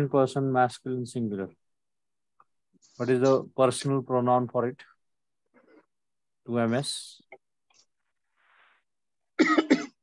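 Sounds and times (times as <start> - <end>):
person coughing: 9.4 - 10.0.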